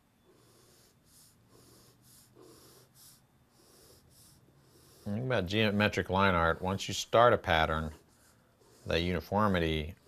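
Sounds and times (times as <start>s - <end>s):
pencil scratching on paper: 0.3s - 10.0s.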